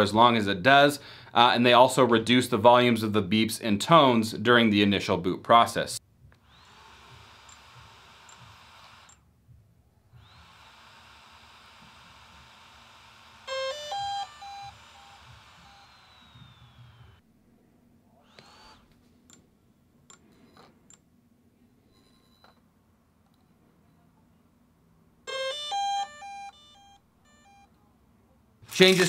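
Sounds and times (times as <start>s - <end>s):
cooling fan whining: 12.4s - 17.2s
soft tones: 13.5s - 29.0s.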